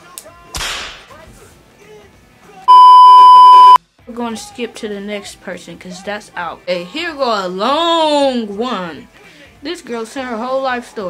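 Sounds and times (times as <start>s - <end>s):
censor bleep tone: 2.7s - 3.8s.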